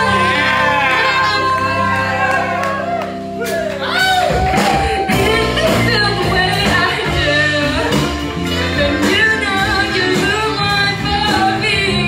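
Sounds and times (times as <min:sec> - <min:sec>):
live band playing: 0:00.0 - 0:12.0
person singing: 0:00.0 - 0:12.0.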